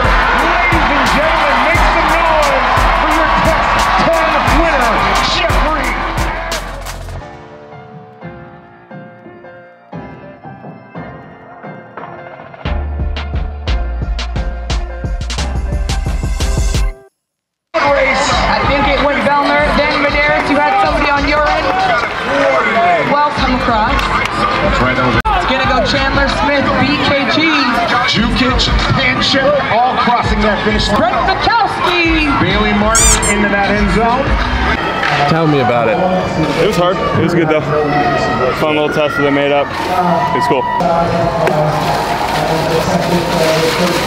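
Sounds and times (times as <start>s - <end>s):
busy hubbub: 0.0s - 7.3s, 17.8s - 44.0s
crowd noise: 0.0s - 12.7s, 17.8s - 44.0s
voice over public address: 32.9s - 33.4s.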